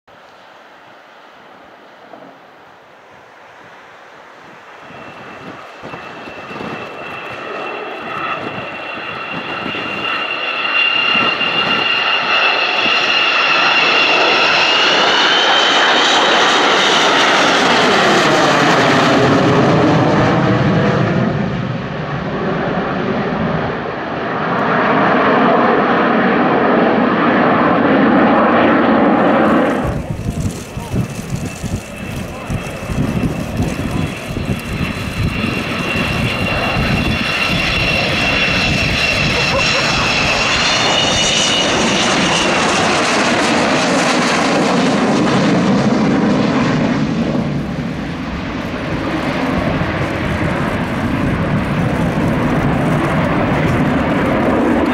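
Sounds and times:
jet roar with high whine: 0.1 - 54.9
rough gusting rumble: 3.0 - 13.5, 16.4 - 54.9.

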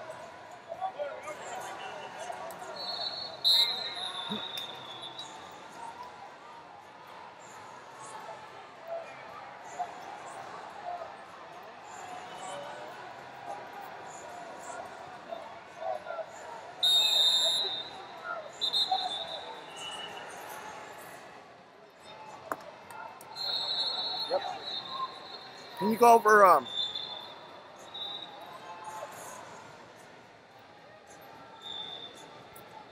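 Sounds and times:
murmur of voices: 0.0 - 4.6, 5.3 - 16.9, 25.8 - 26.7
mat noise: 25.8 - 26.6.

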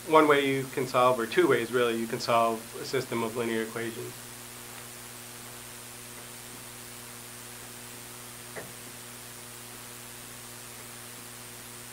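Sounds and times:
electrical mains hum: 0.0 - 11.9.

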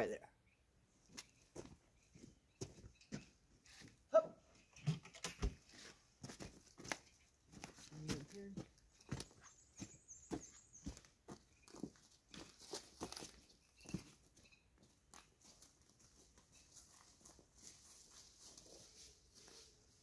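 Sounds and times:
footsteps on dry leaves: 11.7 - 14.1, 15.4 - 20.0.

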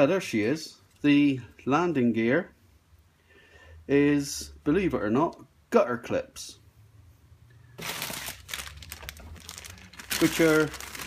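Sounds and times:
plastic bag crinkling: 7.8 - 11.0.

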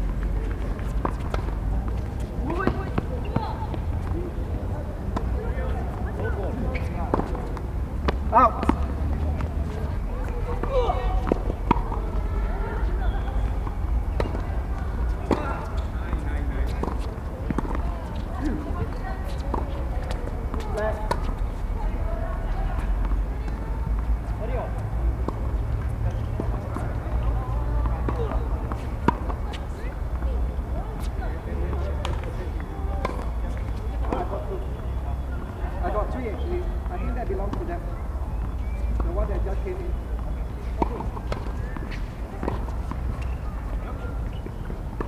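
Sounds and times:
tennis balls struck by rackets: 0.0 - 4.3, 5.1 - 12.2, 13.2 - 21.4, 23.0 - 36.4, 37.3 - 45.0
players talking: 0.0 - 45.0
balls bouncing on hard court: 0.1 - 4.3, 5.1 - 21.4, 38.4 - 45.0.

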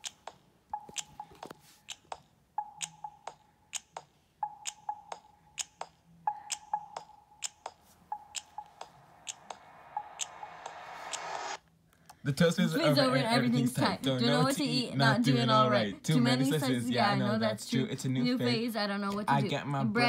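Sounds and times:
sharp irregular clicks: 0.0 - 11.6
electronic beep: 0.8 - 1.5, 2.6 - 3.4, 4.4 - 5.3, 6.3 - 11.6.

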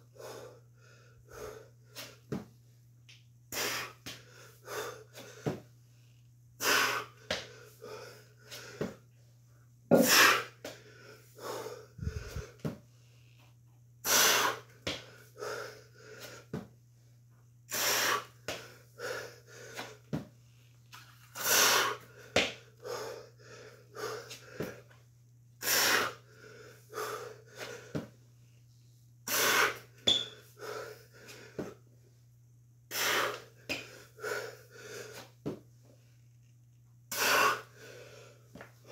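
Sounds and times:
man breathing hard: 0.0 - 2.4, 3.5 - 6.0, 6.6 - 9.1, 9.9 - 16.7, 17.7 - 20.6, 21.4 - 25.0, 25.6 - 28.2, 29.3 - 31.9, 32.9 - 36.0, 37.1 - 38.9.

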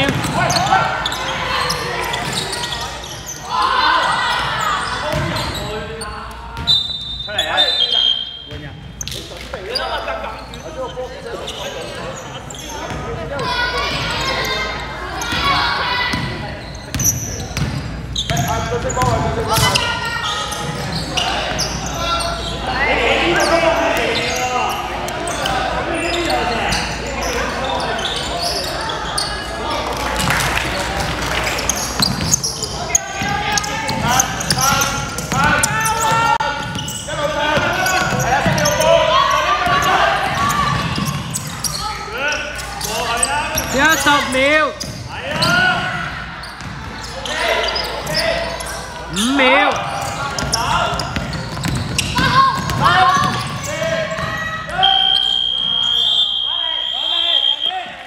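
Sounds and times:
voices shouting in echoing hall: 0.0 - 58.0
basketball bouncing on hardwood floor: 51.5 - 52.0.

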